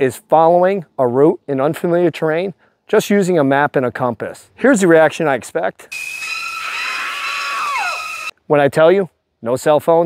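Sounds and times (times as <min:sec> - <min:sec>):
woman screaming: 0:06.0 - 0:08.3.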